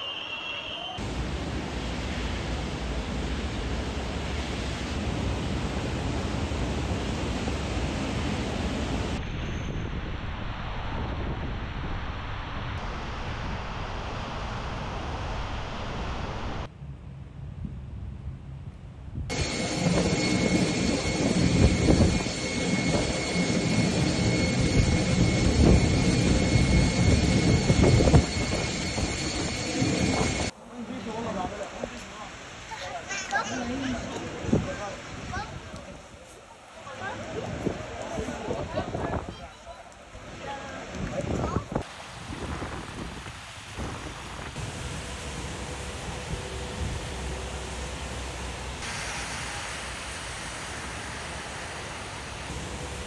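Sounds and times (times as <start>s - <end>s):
jet engine roar: 0.9s - 16.7s, 19.3s - 30.6s, 41.2s - 53.0s
jet engines whining: 1.0s - 10.9s, 19.3s - 30.5s, 41.8s - 53.0s
wind buffeting microphone: 19.1s - 30.5s, 37.1s - 39.6s, 40.2s - 47.4s.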